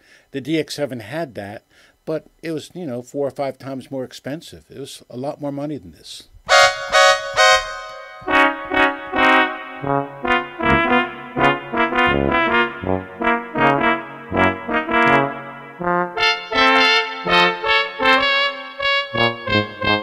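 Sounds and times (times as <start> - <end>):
synthesizer chords and bass: 6.5 - 19.9.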